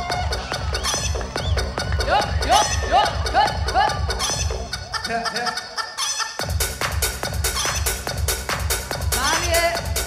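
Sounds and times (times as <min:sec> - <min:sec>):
electronic dance beat: 0:00.0 - 0:05.8, 0:06.4 - 0:10.0
chicken-like clucking sound: 0:04.2 - 0:06.5.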